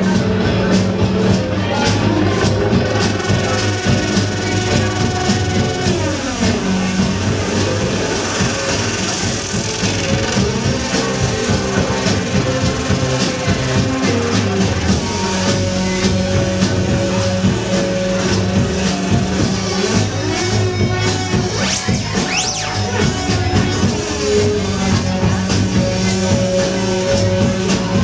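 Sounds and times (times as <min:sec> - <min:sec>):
drum strikes: 0:00.0 - 0:28.0
live band playing: 0:00.0 - 0:28.0.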